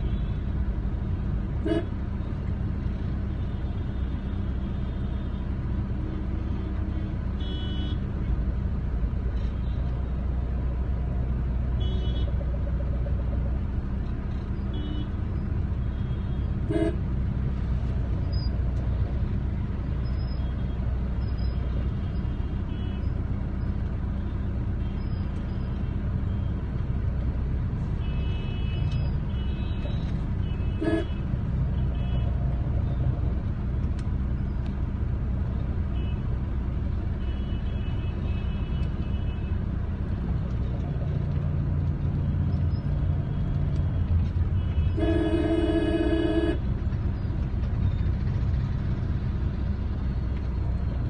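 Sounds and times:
road traffic rumble: 0:00.0 - 0:51.0
car horn toots: 0:01.6 - 0:01.9, 0:16.6 - 0:17.0, 0:28.0 - 0:31.2, 0:44.6 - 0:46.6.

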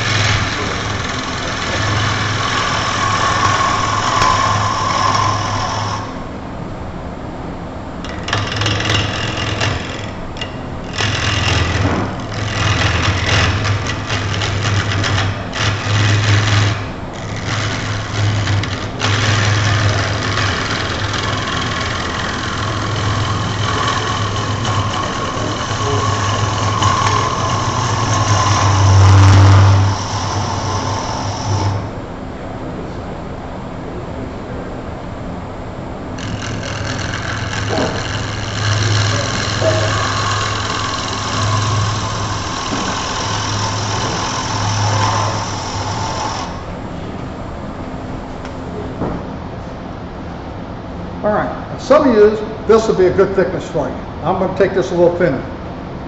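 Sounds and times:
gouge cutting wood shavings: 0:00.0 - 0:06.2, 0:08.1 - 0:31.9, 0:36.2 - 0:46.6
lathe humming: 0:00.0 - 0:32.5, 0:35.5 - 0:56.0.

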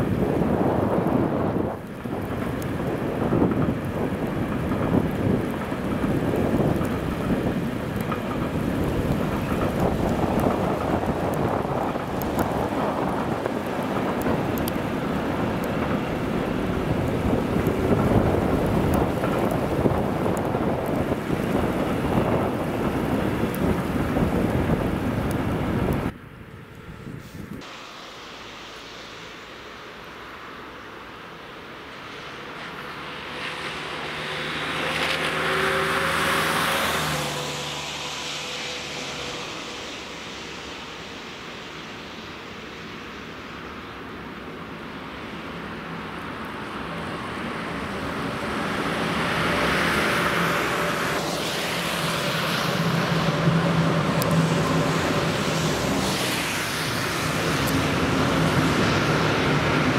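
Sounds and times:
wind on microphone: 0:00.0 - 0:27.7
road vehicle passing: 0:00.0 - 0:59.9.

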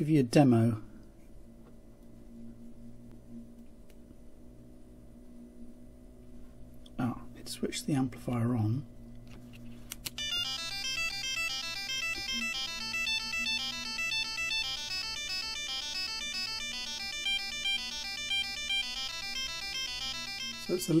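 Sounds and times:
faint low hum: 0:00.0 - 0:21.0
buzzy electronic tune: 0:10.2 - 0:21.0.

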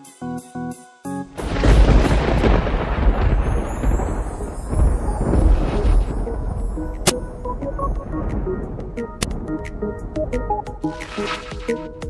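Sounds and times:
thunder-like rumble: 0:01.4 - 0:11.2
sharp crack: 0:10.9 - 0:12.0.

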